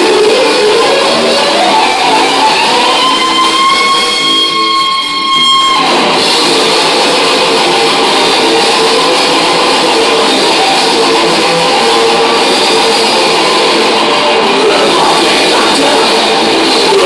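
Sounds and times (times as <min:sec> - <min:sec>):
bass guitar: 0:00.0 - 0:17.0
distorted electric guitars: 0:00.0 - 0:17.0
drums: 0:00.0 - 0:17.0.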